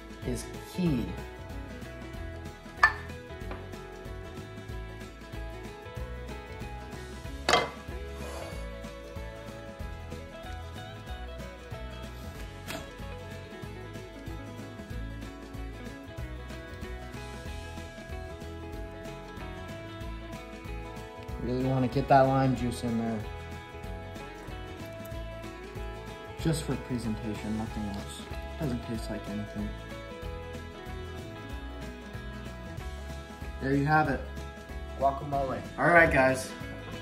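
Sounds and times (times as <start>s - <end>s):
background music: 0.0s - 37.0s
bowl and knife clinking: 2.8s - 3.1s, 7.5s - 7.8s.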